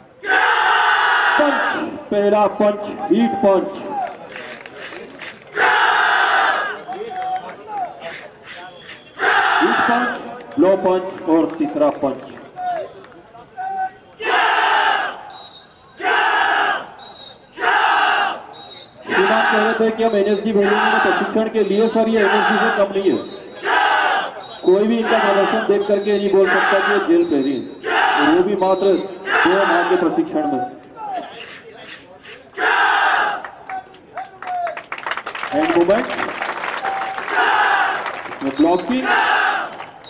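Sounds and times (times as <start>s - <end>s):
group shouting a battle cry: 0.2s - 1.9s, 5.6s - 6.8s, 9.2s - 10.2s, 13.6s - 15.2s, 16.0s - 16.8s, 17.6s - 18.4s, 19.1s - 19.8s, 20.6s - 21.4s, 22.2s - 22.8s, 23.6s - 24.4s, 25.0s - 25.7s, 26.4s - 27.1s, 27.8s - 28.4s, 29.2s - 30.0s, 32.6s - 33.4s, 37.3s - 38.0s, 39.0s - 39.7s.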